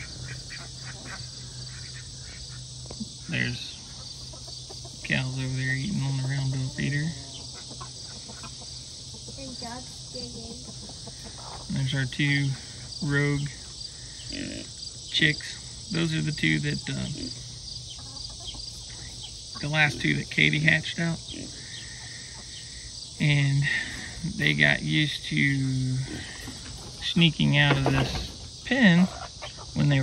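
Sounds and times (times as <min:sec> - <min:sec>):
faint chicken calls: 0:00.0 - 0:14.5, 0:16.6 - 0:20.6, 0:21.2 - 0:24.6, 0:25.3 - 0:30.0
crickets chirping: 0:00.0 - 0:30.0.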